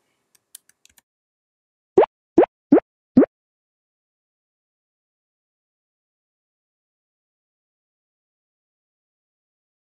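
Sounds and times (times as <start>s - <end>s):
rising bloop pops: 2.0s - 3.3s.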